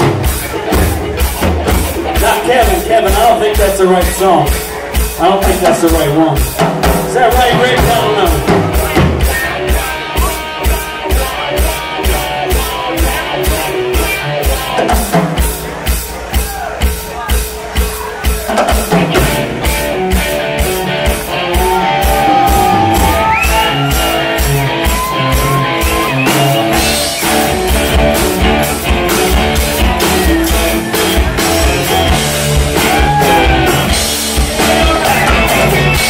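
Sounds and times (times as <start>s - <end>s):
drum kit beat: 0.0s - 36.0s
rock band playing: 0.0s - 36.0s
lead electric guitar bending notes: 18.9s - 36.0s.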